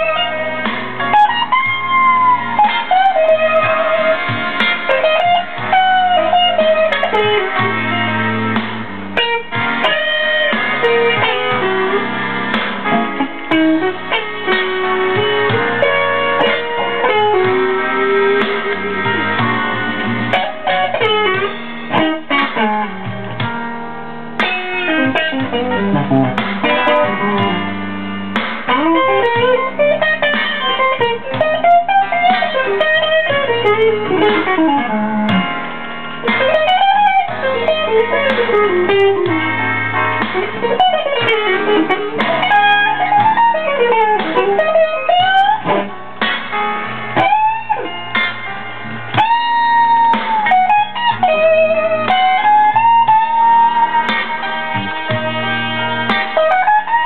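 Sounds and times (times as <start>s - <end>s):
electric guitar blues lead: 0.0s - 57.0s.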